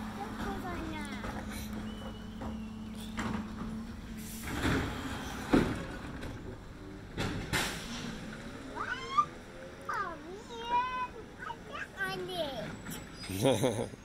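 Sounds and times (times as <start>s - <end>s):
garbage truck engine hum: 0.0s - 14.0s
child squealing: 8.7s - 9.4s.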